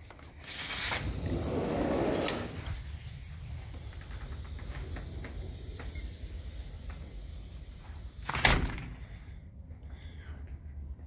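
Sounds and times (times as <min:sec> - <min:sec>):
door moving: 0:00.0 - 0:09.2.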